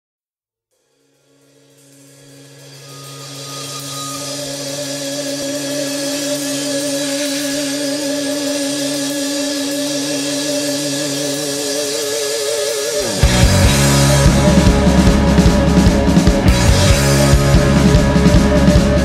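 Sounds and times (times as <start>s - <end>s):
cymbal wash: 0.8s - 19.0s
electric guitar held notes: 2.1s - 19.0s
bass guitar notes: 12.6s - 19.0s.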